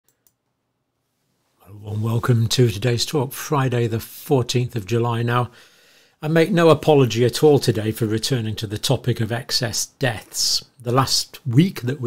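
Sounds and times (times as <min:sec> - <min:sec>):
faint clicks: 0:00.1 - 0:00.5
man speaking: 0:01.6 - 0:05.6, 0:06.2 - 0:12.0.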